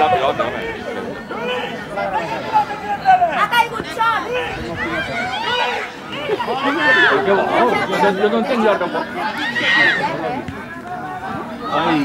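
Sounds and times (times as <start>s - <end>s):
voices shouting and chattering: 0.0s - 12.0s.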